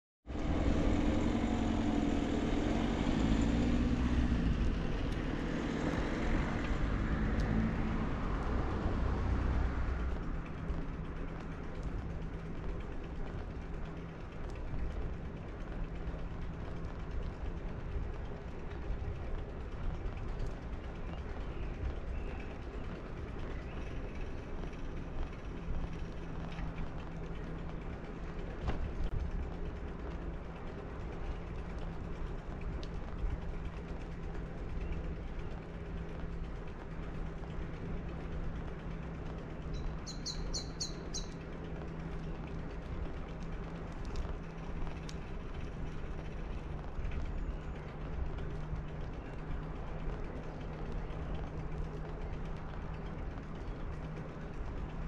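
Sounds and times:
bike creaks and rattles: 0.2s - 55.0s
tyres on asphalt: 0.2s - 55.0s
bicycle freewheel ticking: 3.9s - 55.0s.

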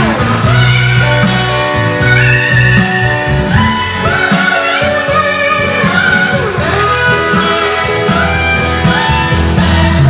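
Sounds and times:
bass guitar: 0.0s - 10.0s
drums: 0.0s - 10.0s
electric guitar solo: 0.0s - 10.0s.

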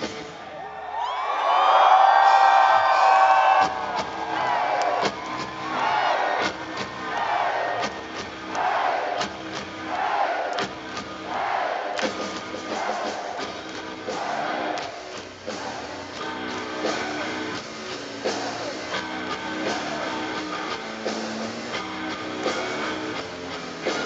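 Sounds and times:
crowd noise: 0.0s - 24.0s
loud held yell: 0.5s - 9.2s, 9.8s - 10.6s, 11.2s - 12.0s, 12.6s - 13.4s.

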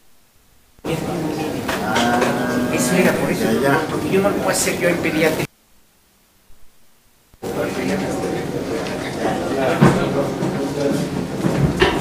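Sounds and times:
murmur of conversation: 0.8s - 5.5s, 7.4s - 12.0s.

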